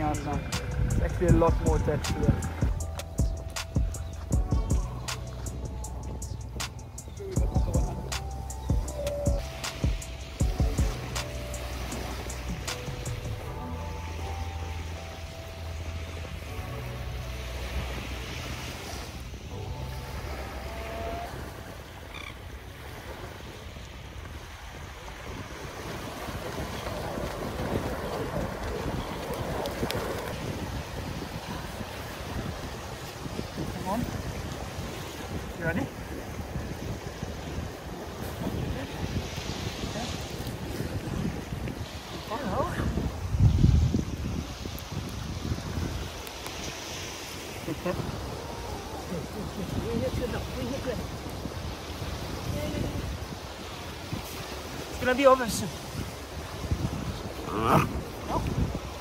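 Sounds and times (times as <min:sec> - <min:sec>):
background music with bass line: 0:00.0 - 0:17.6
surf washing on beach: 0:00.0 - 0:59.0
wind on microphone: 0:00.0 - 0:59.0.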